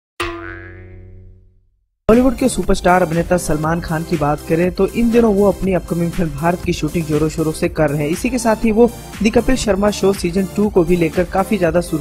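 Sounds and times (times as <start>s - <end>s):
ringing sound effect hit: 0.2s - 1.5s.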